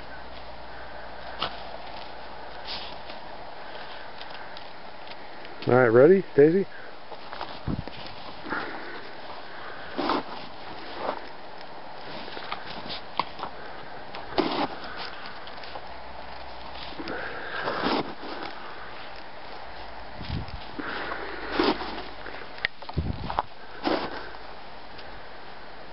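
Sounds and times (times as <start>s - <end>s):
dog sniffing in snow: 2.6s - 3.0s, 8.4s - 11.3s, 20.8s - 22.2s, 23.8s - 24.3s.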